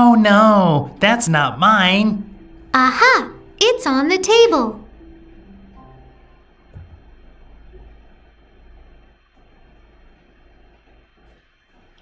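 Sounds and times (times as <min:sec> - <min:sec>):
low hum: 0:00.0 - 0:12.0
microphone hiss: 0:00.0 - 0:12.0.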